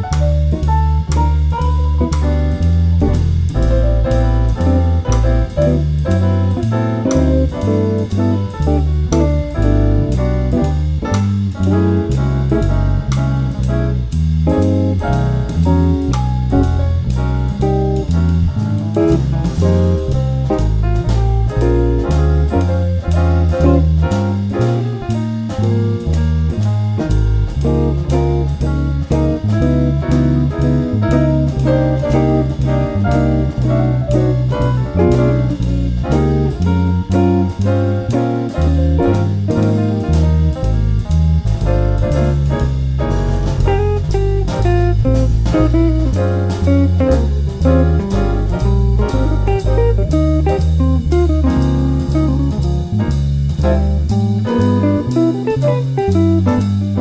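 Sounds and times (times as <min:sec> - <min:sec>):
electric bass walking line: 0:00.0 - 0:57.0
jazz backing track: 0:00.0 - 0:57.0.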